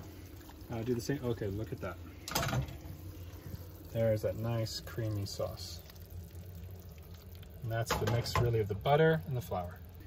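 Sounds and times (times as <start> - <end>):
sauce simmering in a frying pan: 0.0 - 10.0.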